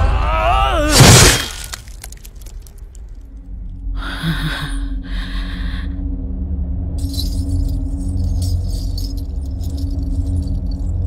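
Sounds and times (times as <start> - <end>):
metallic jangling and clinking: 7.0 - 11.0.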